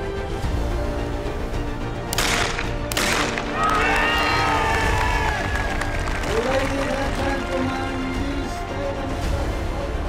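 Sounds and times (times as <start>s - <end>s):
background music: 0.0s - 10.0s
shotgun shots with echo: 2.1s - 3.6s.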